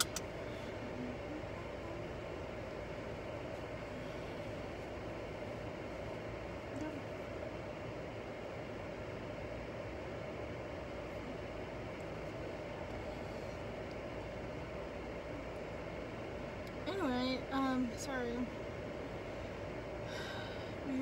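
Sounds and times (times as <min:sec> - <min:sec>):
road noise inside car: 0:00.0 - 0:21.0.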